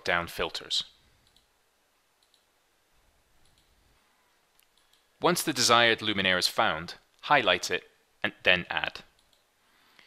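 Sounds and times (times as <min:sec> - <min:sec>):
computer mouse clicks: 0:01.2 - 0:01.5, 0:02.2 - 0:02.5, 0:03.4 - 0:03.8, 0:04.6 - 0:05.1, 0:09.2 - 0:09.5.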